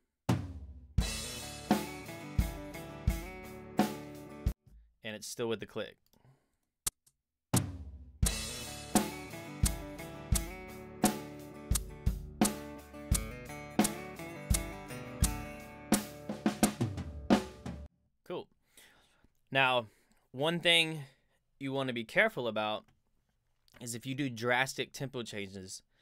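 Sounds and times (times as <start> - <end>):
drum kit beat: 0.3 - 4.5, 7.6 - 17.9
acoustic guitar playing: 1.1 - 4.5, 8.3 - 17.8.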